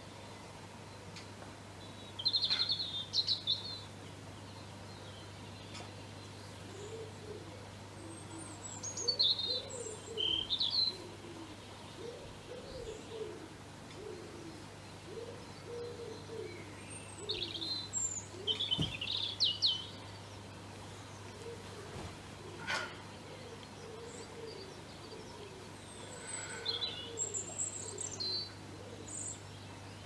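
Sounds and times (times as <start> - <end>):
songbird chirping: 0.0 - 30.0
pigeon cooing: 6.7 - 16.6, 21.3 - 29.2.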